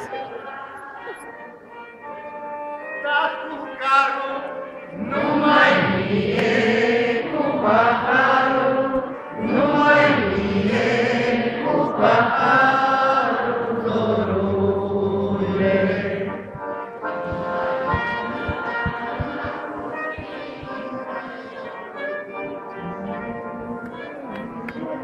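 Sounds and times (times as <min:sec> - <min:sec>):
crowd singing in unison: 0:04.9 - 0:21.8.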